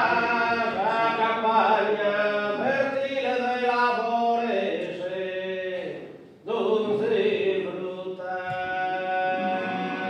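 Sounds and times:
male voices singing in harmony: 0.0 - 10.0.

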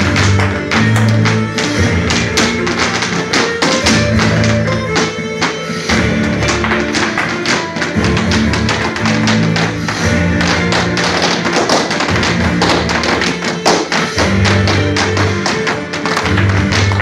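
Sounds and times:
dance music: 0.0 - 17.0
hard shoes tapping on floor: 0.0 - 17.0.

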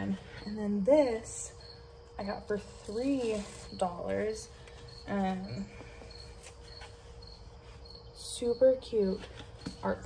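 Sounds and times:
crickets chirping: 0.0 - 10.0
low background hum: 0.0 - 10.0.

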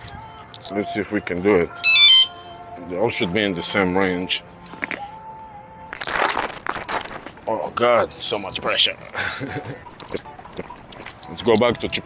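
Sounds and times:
rasping crinkling box closing: 6.0 - 7.4.

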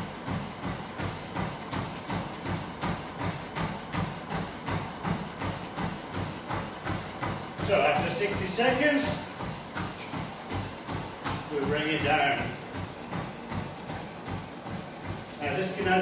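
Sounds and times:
running footfalls on treadmill: 0.0 - 16.0
treadmill humming: 0.0 - 16.0.

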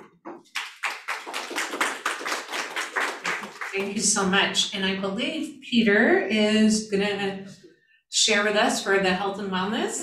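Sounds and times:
audience applauding: 0.4 - 4.0.

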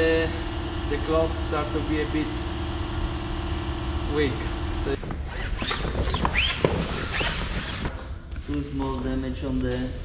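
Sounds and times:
short squeaks: 5.3 - 7.9.

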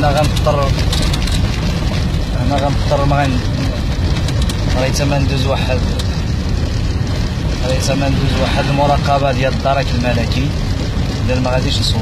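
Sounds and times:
vehicle engine and tyres rumbling: 0.0 - 12.0
person speaking: 7.6 - 10.6.

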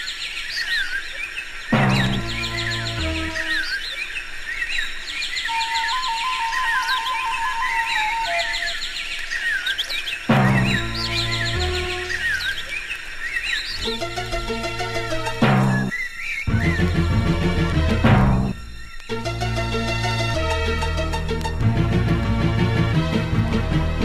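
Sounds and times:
bird chirps: 0.0 - 20.4
heavy bass hit: 1.8 - 3.4, 10.3 - 12.3, 15.3 - 15.9, 16.5 - 18.7.

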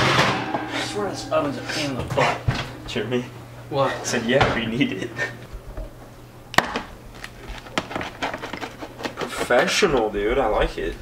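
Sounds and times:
low steady hum: 0.0 - 8.6
pizza cutter crunching crust: 7.3 - 9.8.

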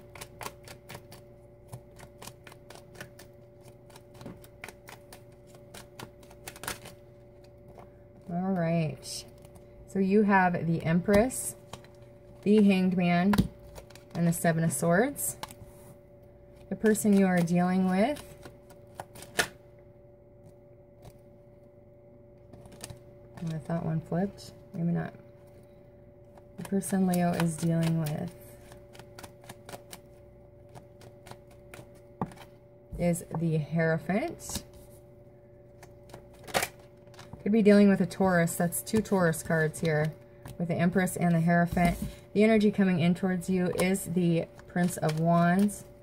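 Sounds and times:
cards shuffling: 0.0 - 7.9, 16.7 - 19.6, 26.6 - 32.5, 43.6 - 45.9
faint steady hum: 0.0 - 46.0.

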